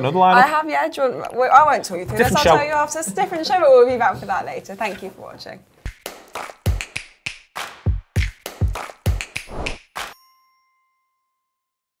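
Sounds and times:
bell-like ding: 10.1 - 11.6.

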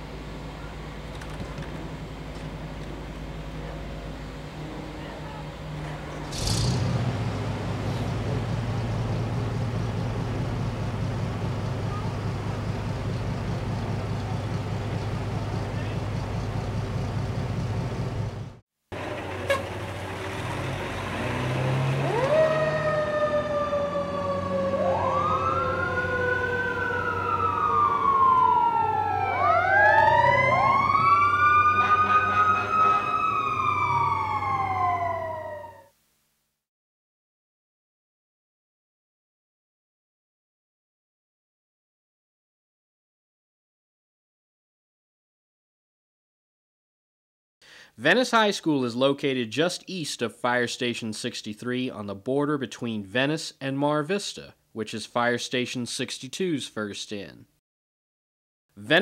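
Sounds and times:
diesel engine rumbling: 0.0 - 35.3
sirens wailing: 6.8 - 18.4, 19.0 - 35.9.

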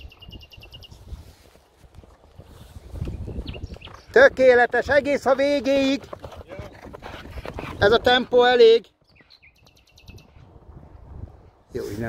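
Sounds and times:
wind rumbling on microphone: 0.0 - 8.4, 9.0 - 12.0
horses' hooves galloping on sand: 1.0 - 11.3.

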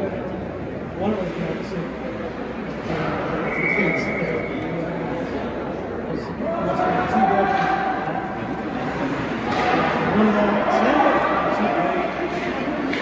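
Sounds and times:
indistinct voices echoing in hall: 0.0 - 13.0.

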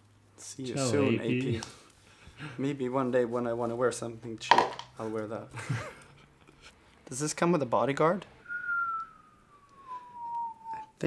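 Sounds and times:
person whistling falling note: 8.5 - 11.0.

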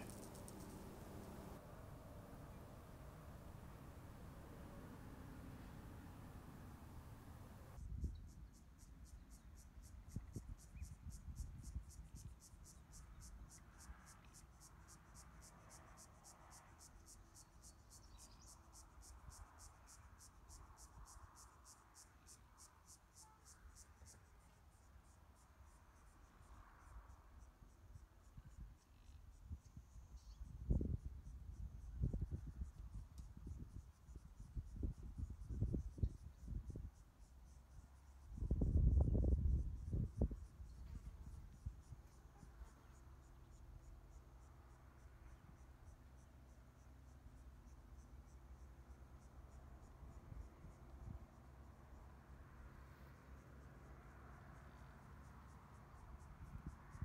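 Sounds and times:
distant highway traffic hum: 0.0 - 7.8, 43.0 - 57.0
insect pulsing chirp: 0.0 - 27.2, 27.9 - 52.0.

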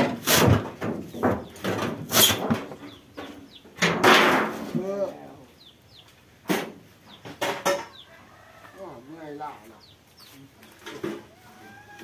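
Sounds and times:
small birds chirping: 1.0 - 3.8, 4.6 - 12.0
chicken clucking: 2.8 - 3.8.

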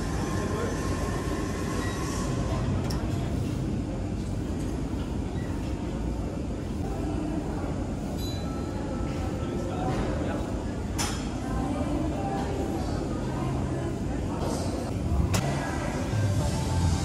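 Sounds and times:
low rumbling gym noise: 0.0 - 17.0.

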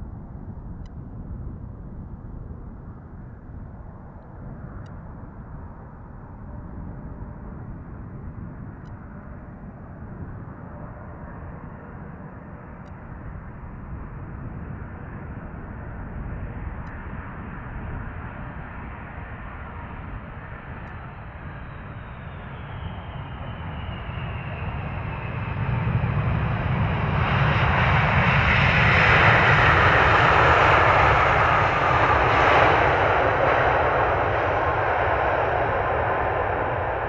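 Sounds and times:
jet engines with whine: 0.0 - 37.0.

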